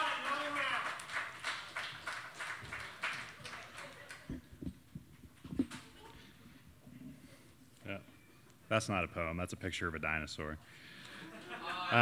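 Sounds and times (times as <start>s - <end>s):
audience clapping: 0.0s - 4.6s.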